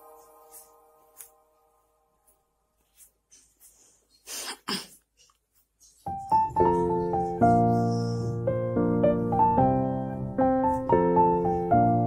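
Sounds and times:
person sneezing or coughing: 4.3 - 5.0.

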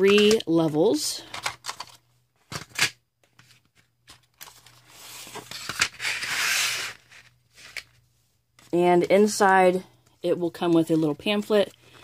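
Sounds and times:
pencil trays clicking and knocking: 0.0 - 2.9.

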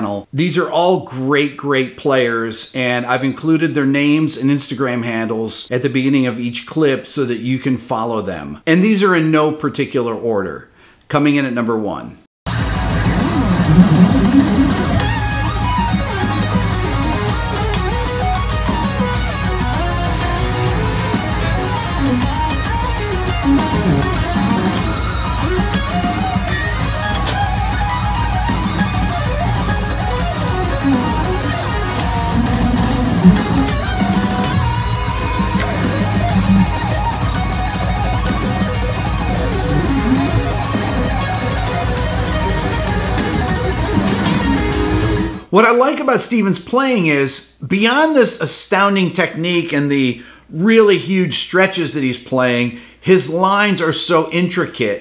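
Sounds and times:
electric guitar lead playing: 12.5 - 45.5.

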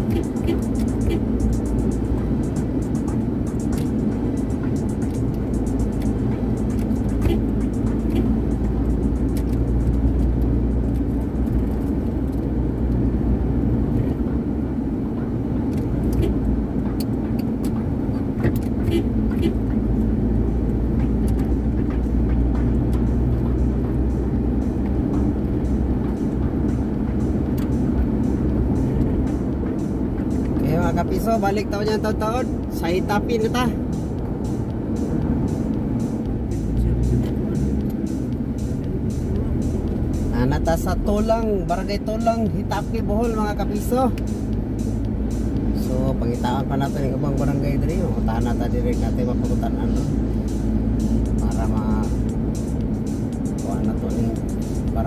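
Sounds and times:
car engine and tyres rumbling: 0.0 - 55.0.

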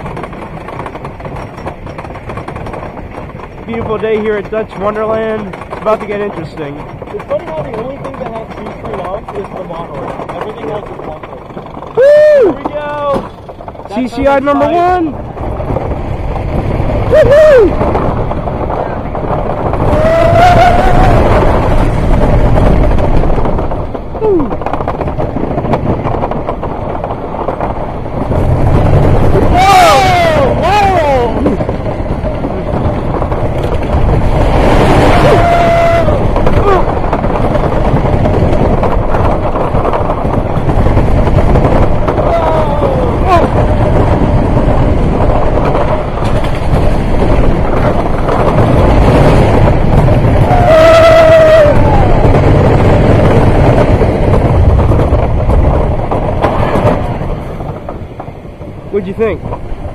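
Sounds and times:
roller coaster rumbling on track: 0.0 - 59.9
riders whooping and screaming: 11.8 - 13.2, 17.0 - 18.6, 19.2 - 21.9, 29.2 - 31.6, 34.7 - 37.2, 42.0 - 43.8, 50.2 - 53.6.

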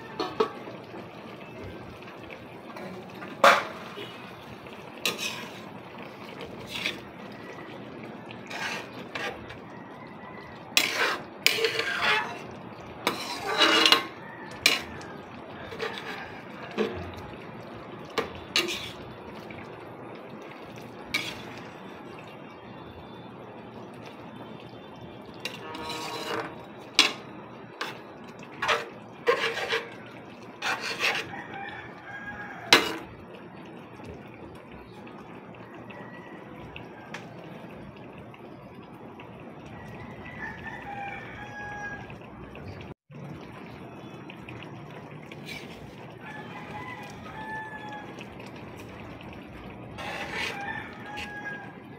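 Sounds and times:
soup simmering: 0.0 - 51.9
spatula scraping a pan: 5.0 - 7.2, 8.3 - 9.7, 10.7 - 15.0, 15.6 - 17.0, 18.2 - 19.0, 21.1 - 21.8, 25.4 - 31.3, 32.6 - 33.1, 45.3 - 46.0, 49.9 - 51.7.

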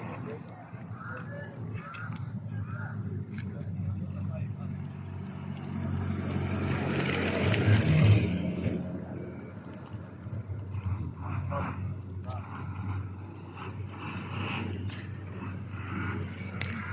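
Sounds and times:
road vehicle passing by: 0.0 - 16.9.

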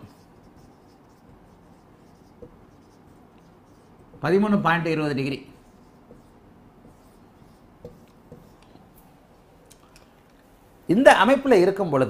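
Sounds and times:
marker writing on whiteboard: 0.0 - 9.7.

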